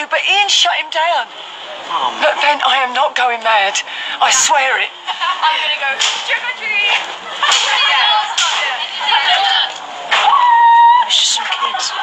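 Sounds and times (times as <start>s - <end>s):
children calling out: 4.4s - 12.0s
sharp cracks: 6.0s - 6.4s, 7.0s - 8.8s.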